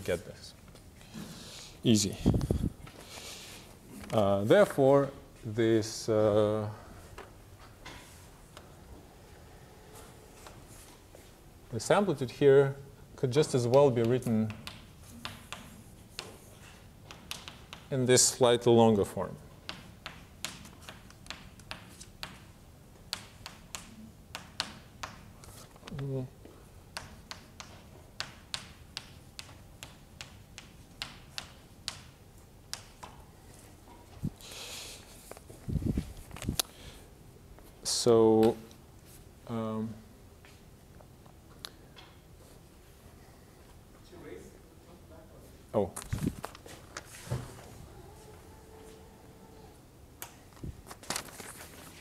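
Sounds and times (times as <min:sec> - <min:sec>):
chalk tapping on blackboard: 0:13.7 - 0:17.9, 0:19.6 - 0:22.5, 0:23.1 - 0:25.3, 0:26.9 - 0:33.2.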